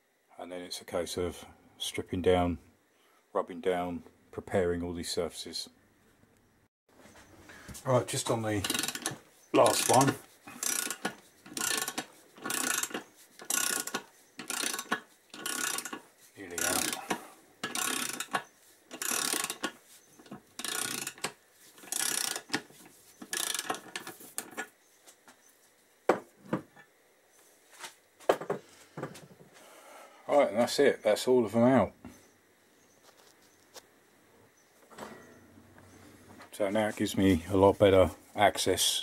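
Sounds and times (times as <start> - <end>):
ratchet wrench clicking: 8.6 - 24.7.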